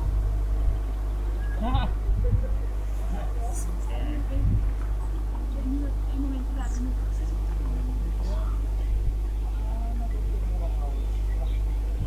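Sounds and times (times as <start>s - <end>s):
steady low rumble: 0.0s - 12.0s
people talking faintly: 1.3s - 12.0s.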